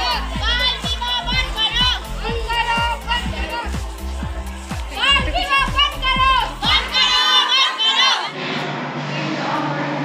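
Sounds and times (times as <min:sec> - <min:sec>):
steady drumbeat: 0:00.0 - 0:07.5
girls shouting slogans: 0:04.9 - 0:08.4.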